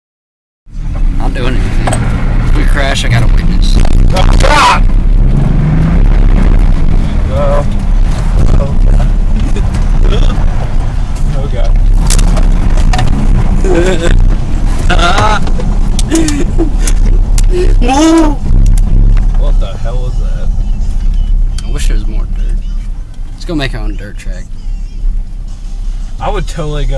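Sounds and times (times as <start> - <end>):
car engine and road rumble: 0.7 - 26.9.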